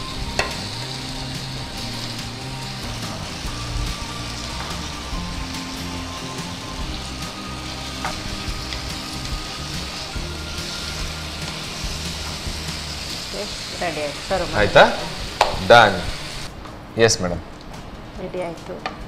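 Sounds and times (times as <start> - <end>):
food sizzling in a pan: 0.0 - 16.5.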